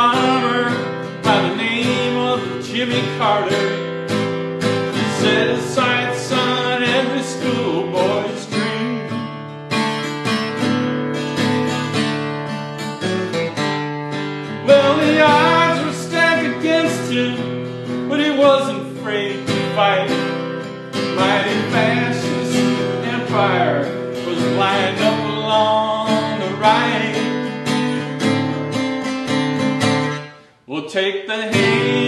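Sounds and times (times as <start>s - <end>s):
man singing: 0.0s - 3.9s, 4.8s - 9.3s, 14.5s - 27.8s, 30.7s - 32.0s
guitar strumming and picking: 0.0s - 30.6s, 31.5s - 32.0s.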